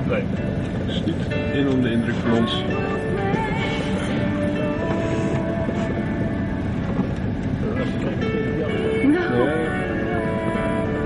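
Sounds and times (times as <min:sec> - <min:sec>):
faint voices: 0:00.0 - 0:11.0
music: 0:00.0 - 0:11.0
vehicle rumbling: 0:00.0 - 0:11.0.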